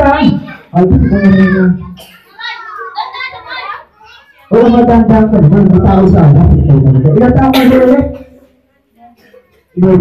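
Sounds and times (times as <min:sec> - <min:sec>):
children calling out: 0:00.0 - 0:04.9.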